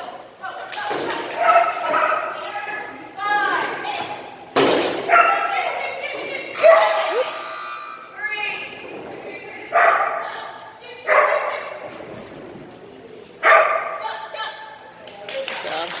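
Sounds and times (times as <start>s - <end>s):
dog barking: 5.1s - 5.5s, 9.8s - 10.2s, 11.1s - 11.6s, 13.4s - 14.0s.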